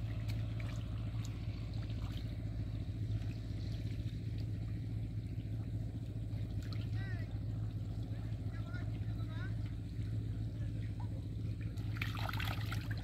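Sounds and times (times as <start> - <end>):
small engine droning: 0.0 - 13.0
water trickling: 0.0 - 13.0.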